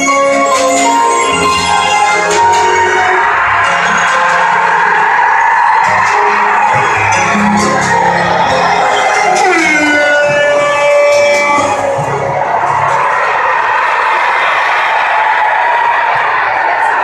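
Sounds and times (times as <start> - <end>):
music with held notes: 0.0 - 13.0
crowd cheering and chatter: 0.0 - 17.0.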